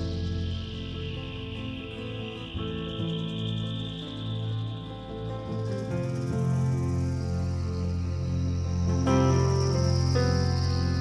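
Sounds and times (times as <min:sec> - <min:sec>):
piano chords: 0:00.0 - 0:11.0
thin steady high tone: 0:00.0 - 0:11.0.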